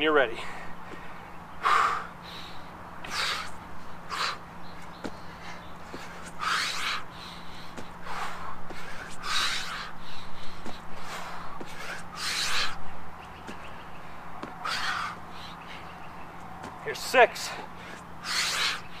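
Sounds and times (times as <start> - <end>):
man breathing heavily: 0.1 - 19.0.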